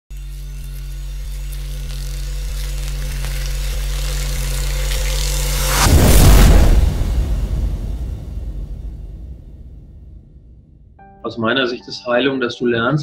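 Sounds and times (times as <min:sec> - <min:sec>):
low sustained drone: 0:00.1 - 0:08.1
rising whoosh: 0:05.0 - 0:10.9
boom: 0:05.3 - 0:11.0.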